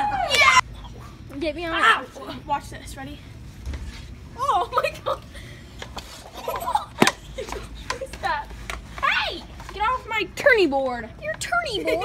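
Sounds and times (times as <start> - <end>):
girls' voices and laughter: 1.3 - 3.2, 4.3 - 12.0.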